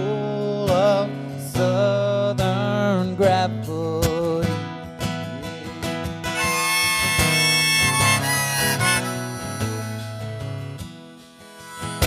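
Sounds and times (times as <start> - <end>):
strummed acoustic guitar: 0.0 - 12.0
harmonica solo: 6.4 - 12.0.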